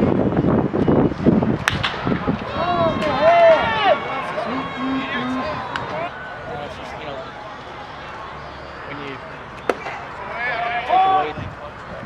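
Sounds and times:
umpire shouting call: 2.8s - 6.5s.

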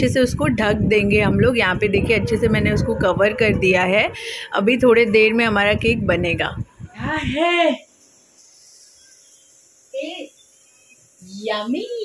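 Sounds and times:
faint steady high hiss: 6.8s - 12.0s.

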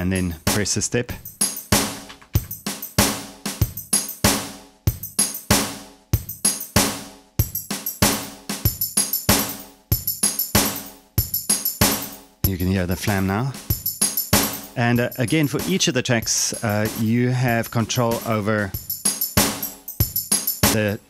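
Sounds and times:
drum machine pattern: 0.0s - 21.0s
tambourine flams: 13.8s - 14.8s, 18.2s - 20.8s.

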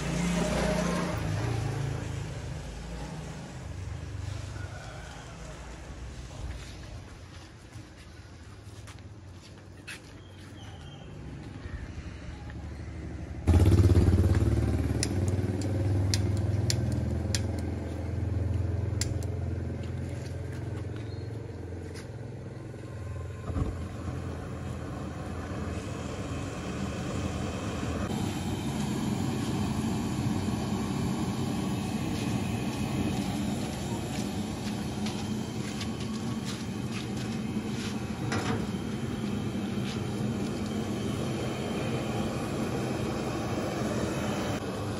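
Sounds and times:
gas burner roaring: 0.0s - 7.2s, 13.3s - 20.6s, 21.5s - 44.9s.

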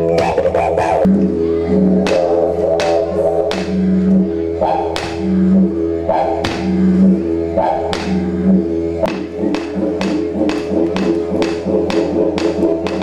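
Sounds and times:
didgeridoo drone: 0.0s - 13.0s
sharp taps keeping time: 1.9s - 13.0s.

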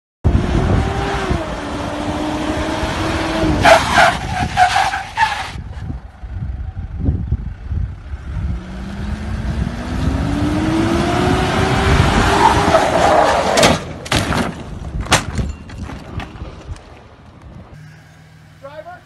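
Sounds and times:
tyres squealing on pavement: 3.6s - 5.8s, 12.4s - 14.0s.

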